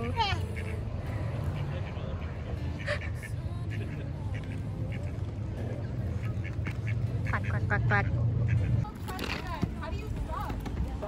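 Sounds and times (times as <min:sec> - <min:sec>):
ducks quacking: 0:00.0 - 0:09.4.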